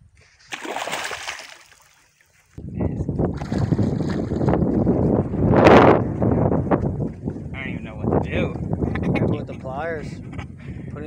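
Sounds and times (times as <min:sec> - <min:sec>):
fish splashing in water: 0:00.5 - 0:02.1.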